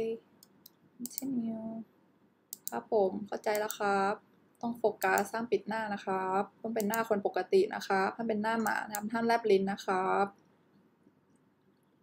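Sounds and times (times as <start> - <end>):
woman speaking: 0.0 - 0.2, 1.0 - 1.9, 2.7 - 10.4
computer mouse clicks: 0.4 - 1.3, 2.5 - 2.8, 3.4 - 3.9, 5.0 - 5.3, 6.8 - 7.2, 8.6 - 9.1.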